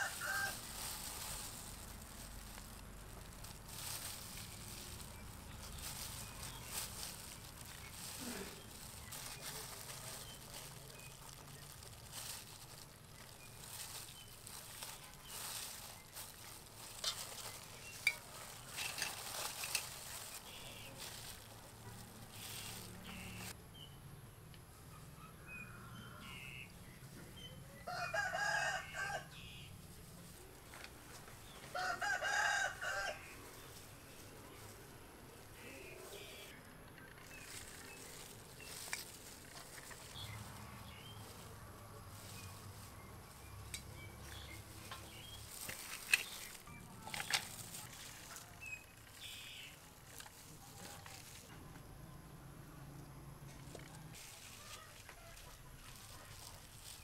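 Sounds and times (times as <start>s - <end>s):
rooster crowing: 0.0s - 0.6s, 27.9s - 29.4s, 31.7s - 33.4s.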